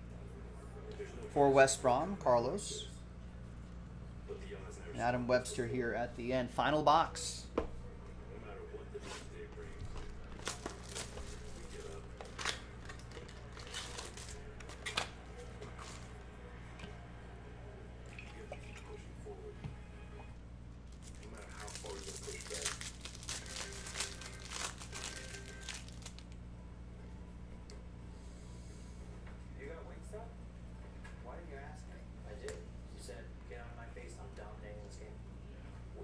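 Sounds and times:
steady low hum: 0.0s - 36.0s
plastic wrapper crinkling: 10.2s - 15.1s, 20.9s - 26.4s.

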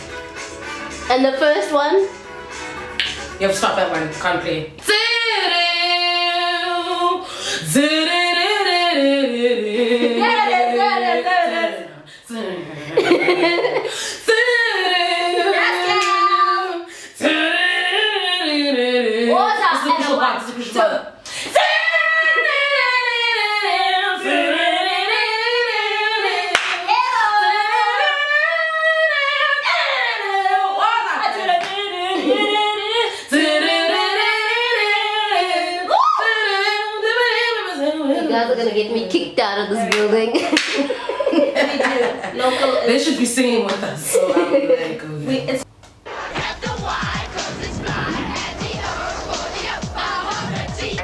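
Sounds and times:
sharp snap: 3.0s - 3.2s
woman singing unaccompanied: 3.6s - 13.4s, 14.2s - 40.3s.

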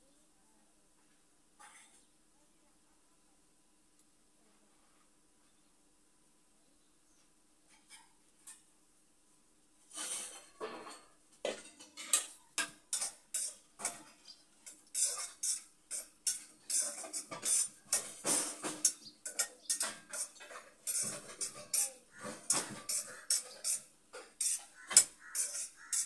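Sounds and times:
metal utensils clinking and scraping: 9.9s - 26.0s.

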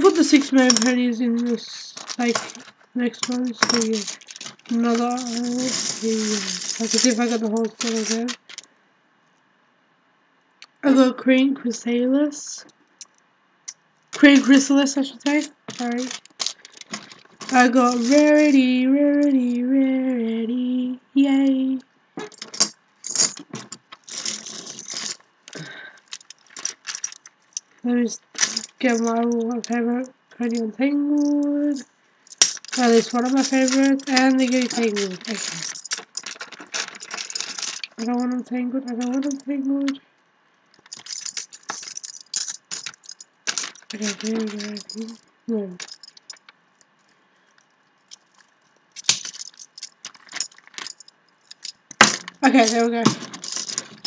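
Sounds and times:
metal ball chains jingling: 0.0s - 8.7s, 14.2s - 19.5s, 22.2s - 29.8s, 30.4s - 40.0s, 40.8s - 46.5s, 48.1s - 54.0s.

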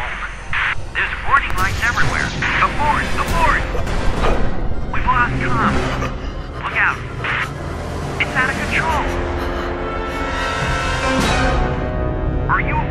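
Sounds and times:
low rumble: 0.0s - 12.0s
dramatic film music: 0.0s - 12.9s.

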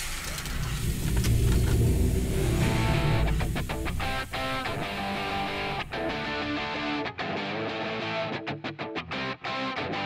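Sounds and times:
car engine rumbling: 0.0s - 6.5s.

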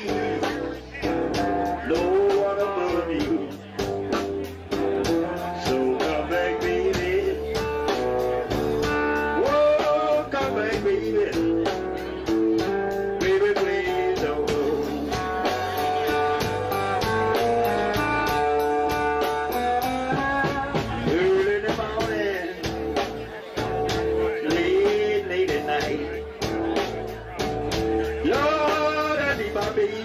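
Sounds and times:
bass: 0.0s - 30.0s
drums keeping a steady beat: 0.0s - 30.0s
resonator guitar with bent notes: 0.0s - 30.0s.

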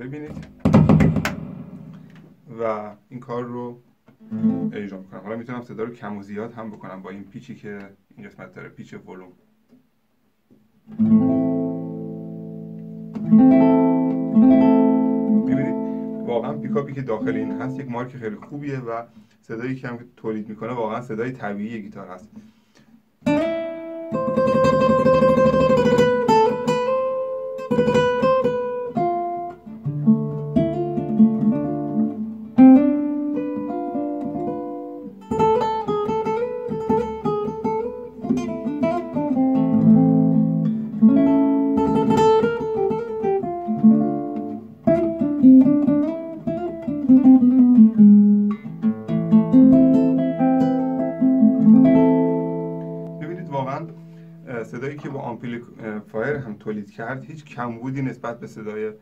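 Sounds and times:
amplified nylon-string guitar: 0.0s - 2.5s, 4.1s - 5.5s, 10.8s - 19.4s, 21.9s - 59.0s.

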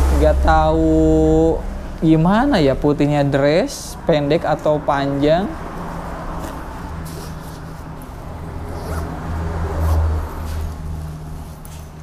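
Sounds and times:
low steady rumble: 0.0s - 11.5s
backpack zipper pulled open: 8.6s - 10.8s.

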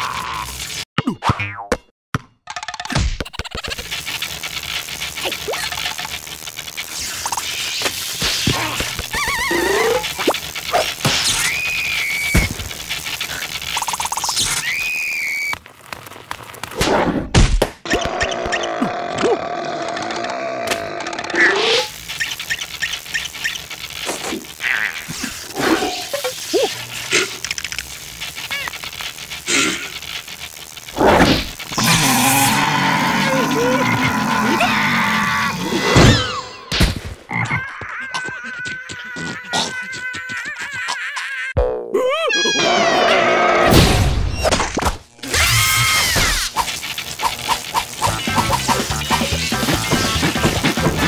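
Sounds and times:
electric crackling: 0.0s - 0.8s, 3.3s - 17.0s, 18.0s - 37.2s, 43.4s - 51.0s
squeaky creature voices and yelps: 8.4s - 12.4s, 24.2s - 27.6s, 31.8s - 36.6s, 37.3s - 43.7s, 45.2s - 46.5s
comic sound effects: 8.4s - 14.9s, 45.2s - 51.0s.

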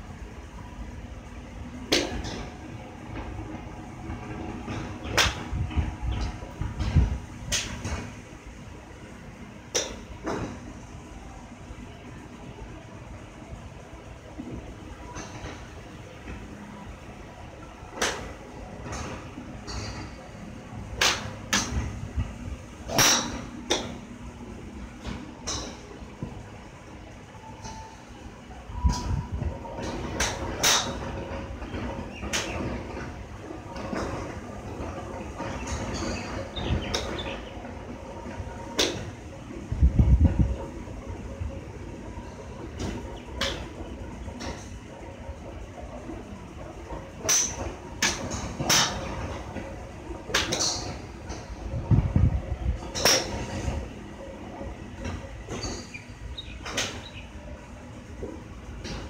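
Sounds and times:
golf clubs striking balls: 1.9s - 2.5s, 4.5s - 8.1s, 9.7s - 10.6s, 15.1s - 16.4s, 17.9s - 24.2s, 25.0s - 26.4s, 29.8s - 39.2s, 42.5s - 51.8s, 52.8s - 54.0s, 54.6s - 57.3s, 58.1s - 59.0s.

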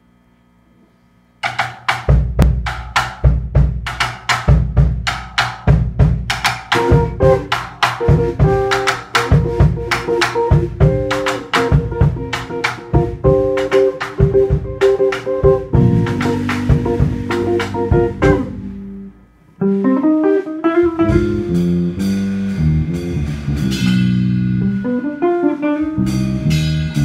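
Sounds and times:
drum kit groove: 1.4s - 27.0s
guitars and bass: 6.0s - 27.0s.

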